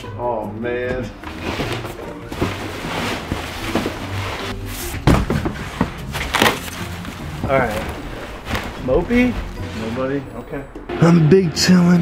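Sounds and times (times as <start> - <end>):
background music: 0.0 - 12.0
cardboard and plastic rustling: 1.2 - 10.4.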